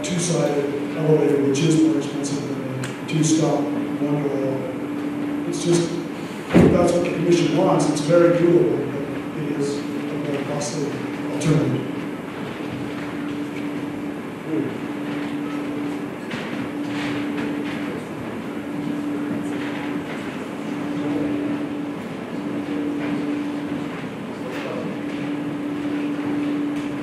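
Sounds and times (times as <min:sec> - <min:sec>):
noisy background: 0:00.0 - 0:27.0
steady constant-pitch hum: 0:00.0 - 0:27.0.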